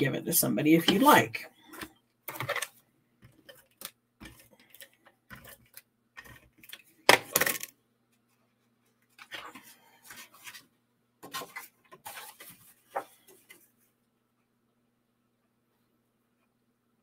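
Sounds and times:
faint electrical hum: 0.0s - 17.0s
paper rustling: 8.9s - 13.7s.

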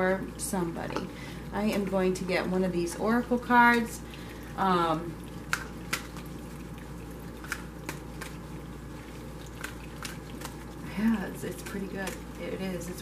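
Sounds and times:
air conditioner hum: 0.0s - 13.0s.

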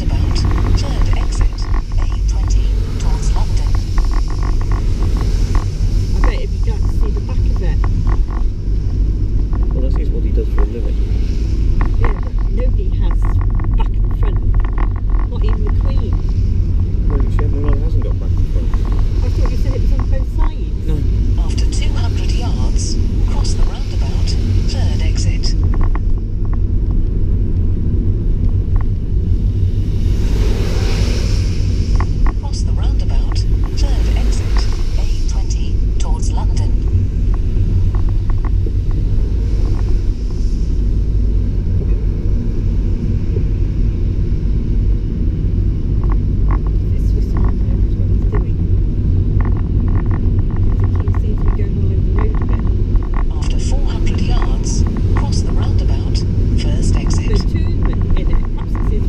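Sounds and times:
car road rumble: 0.0s - 59.0s.

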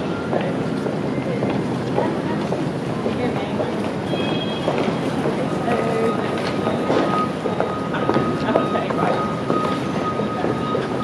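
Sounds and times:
indistinct voices: 0.0s - 11.0s
traffic noise: 0.0s - 11.0s.

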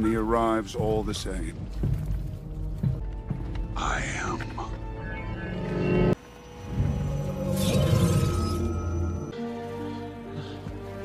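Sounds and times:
low sustained trailer music: 0.0s - 11.0s
glassy shattering shimmer effect: 7.1s - 9.3s.

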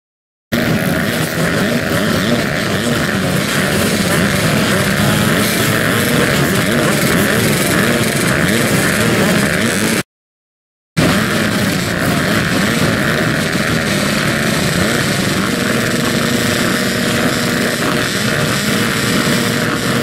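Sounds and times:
motocross bike engines revving: 0.5s - 10.1s, 11.0s - 20.0s.

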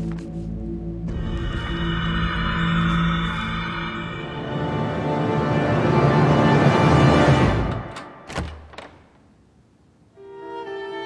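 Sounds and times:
dark tense film score: 0.0s - 9.1s.

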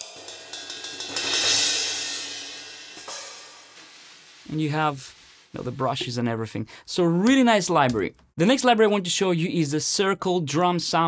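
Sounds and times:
cymbal ringing out: 0.0s - 3.8s.

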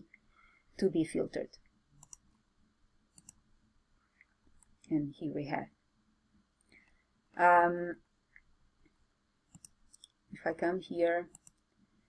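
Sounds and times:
computer mouse clicks: 2.0s - 2.3s, 3.1s - 3.4s, 9.5s - 10.2s, 11.3s - 11.6s.

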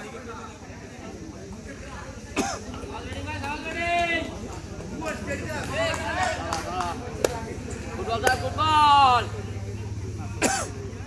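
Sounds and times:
sharp cough-like cry: 2.4s - 2.7s, 10.4s - 10.8s.

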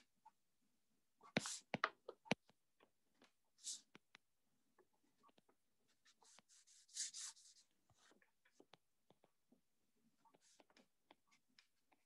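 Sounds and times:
stylus tapping and scratching on screen: 1.2s - 12.0s.

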